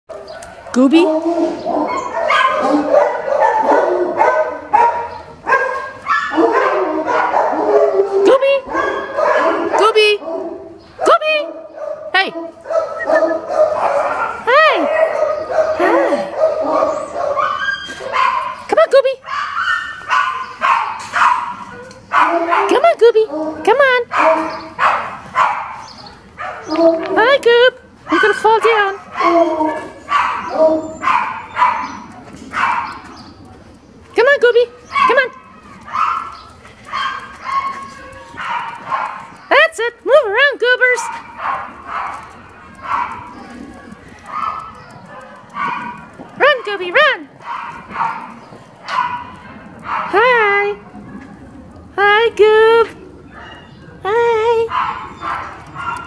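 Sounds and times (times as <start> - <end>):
small dog barking: 0.4 - 8.1, 8.7 - 11.1, 11.7 - 18.6, 19.3 - 22.8, 24.1 - 25.8, 28.1 - 28.5, 29.1 - 32.9, 35.9 - 39.4, 41.1 - 43.4, 44.3 - 46.1, 47.4 - 50.2, 54.7 - 56.0.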